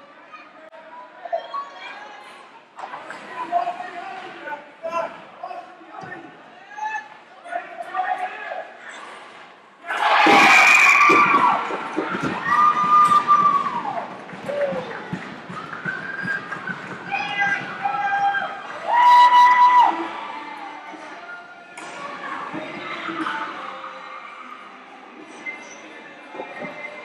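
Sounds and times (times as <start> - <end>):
ice hockey game noise: 0.0 - 27.0
crowd cheering and shouting: 9.8 - 24.4.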